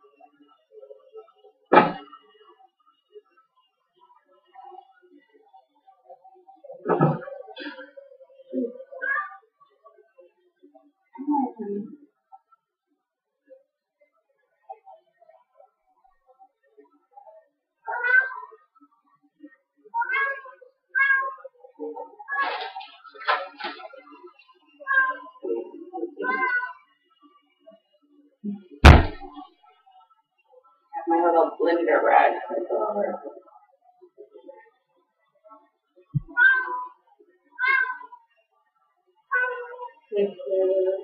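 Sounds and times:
cat meowing: 17.9s - 18.5s, 20.0s - 21.4s, 26.2s - 26.8s, 36.2s - 36.9s, 37.6s - 38.1s, 39.3s - 39.9s
low thump: 28.8s - 29.3s.

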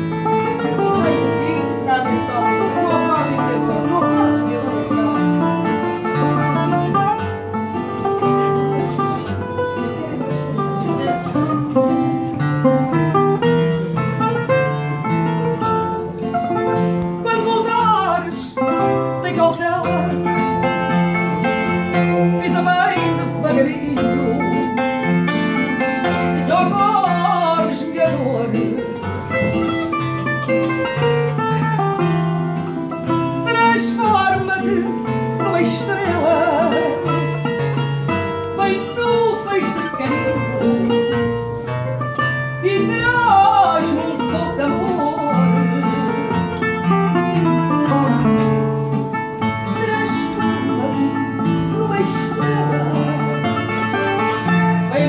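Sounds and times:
classical guitar bass and chords: 0.0s - 55.0s
portuguese guitar melody: 0.0s - 55.0s.

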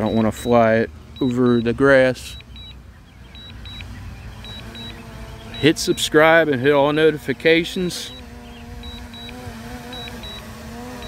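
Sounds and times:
high-pitched warning beeps: 0.0s - 6.2s, 8.0s - 11.0s.

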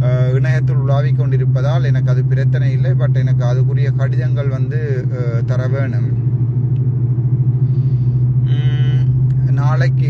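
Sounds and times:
low vehicle rumble: 0.0s - 10.0s.

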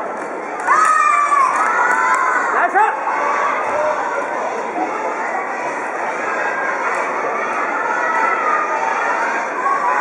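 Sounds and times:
crowd noise: 0.0s - 10.0s
children shouting and cheering: 0.1s - 10.0s.

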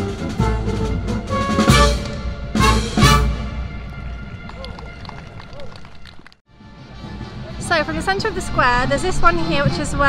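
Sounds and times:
drums: 0.0s - 4.6s
brass band playing: 0.0s - 5.2s.

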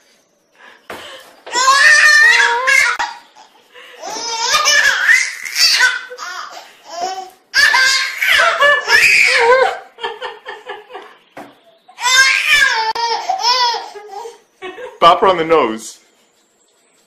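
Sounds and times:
baby laughing: 1.5s - 9.9s, 11.9s - 14.4s.

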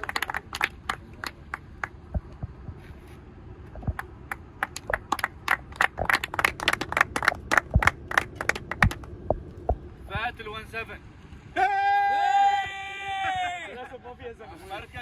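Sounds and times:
small group clapping: 0.0s - 2.1s, 3.9s - 9.2s.

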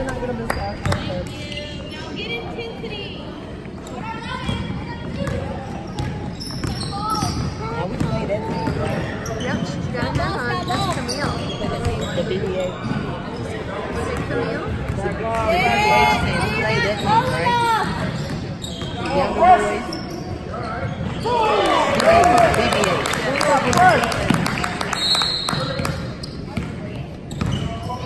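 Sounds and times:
voices echoing: 0.0s - 28.0s.

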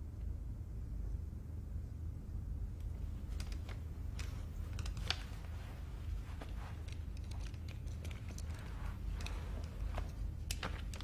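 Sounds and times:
low steady hum: 0.0s - 11.0s
faint clicks and rustles: 2.7s - 11.0s.

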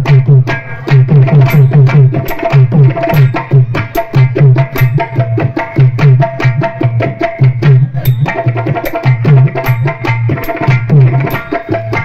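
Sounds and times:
drums beaten in fast rhythm: 0.0s - 12.0s.

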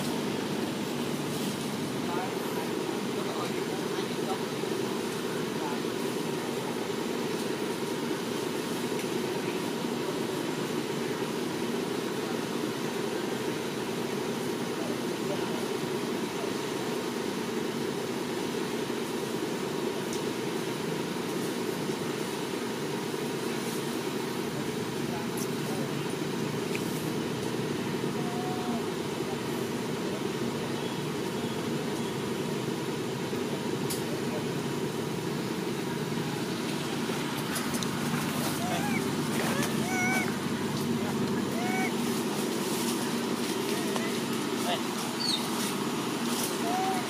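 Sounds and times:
low-pitched background noise: 0.0s - 47.0s.

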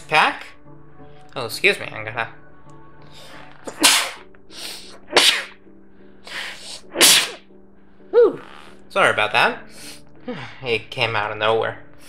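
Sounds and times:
breath drawn in: 3.1s - 5.6s, 6.2s - 7.4s
man sneezing: 3.7s - 4.2s, 4.8s - 5.6s, 6.7s - 7.4s.

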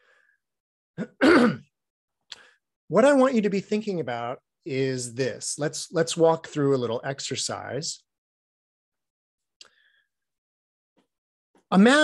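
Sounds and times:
man clearing throat: 1.0s - 1.7s.

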